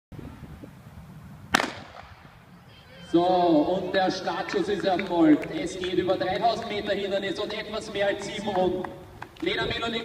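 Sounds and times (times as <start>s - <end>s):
starter's pistol shot: 1.5s - 2.2s.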